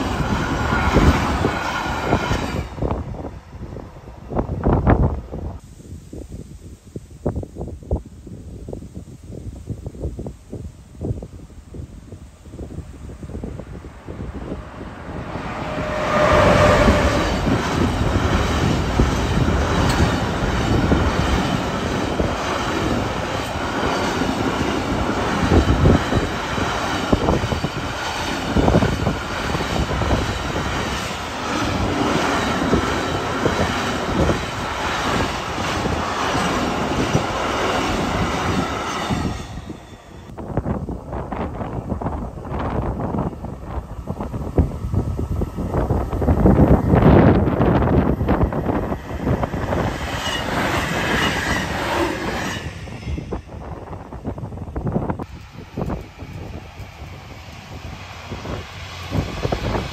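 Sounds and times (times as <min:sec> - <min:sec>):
train wheels rumbling on rail: 0:00.0 - 0:05.6, 0:10.0 - 0:59.9
wind buffeting microphone: 0:00.0 - 0:59.9
high ringing wheel squeal: 0:15.4 - 0:18.0, 0:50.1 - 0:51.8.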